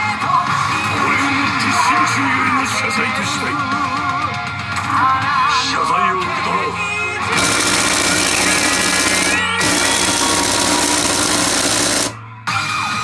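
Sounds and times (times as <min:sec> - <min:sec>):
pachinko machine music and effects: 0:07.4 - 0:12.2.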